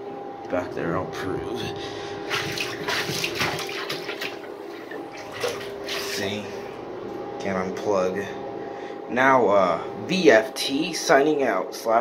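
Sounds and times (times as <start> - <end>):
faint steady hum: 0.0 - 12.0
toilet flushing water splashing: 2.2 - 6.4.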